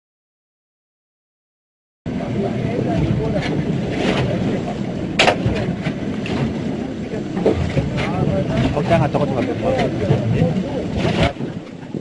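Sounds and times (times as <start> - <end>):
low volcanic rumble: 2.1 - 12.0.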